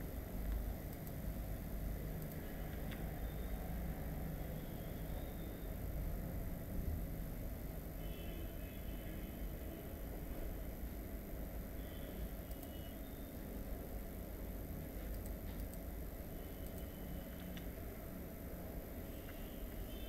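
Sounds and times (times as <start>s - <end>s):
faint high whine: 0.0s - 20.0s
low room noise rumble: 0.0s - 20.0s.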